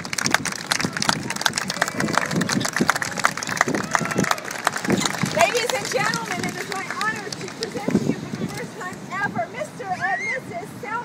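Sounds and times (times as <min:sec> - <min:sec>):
people clapping: 0:00.0 - 0:09.0.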